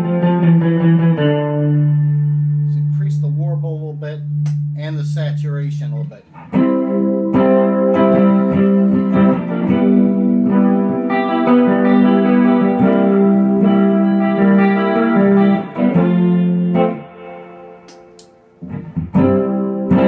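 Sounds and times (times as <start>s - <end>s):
electric guitar chords with chorus: 0.0s - 20.0s.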